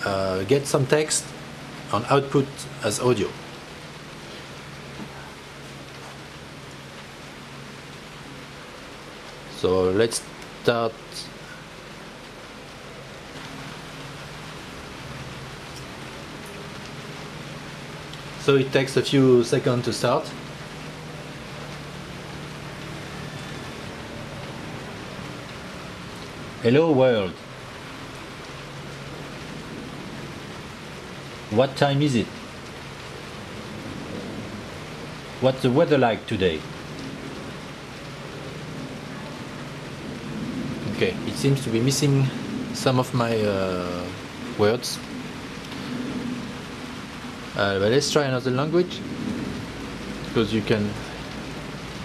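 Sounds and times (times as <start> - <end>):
steady background hiss: 0.0 - 52.0.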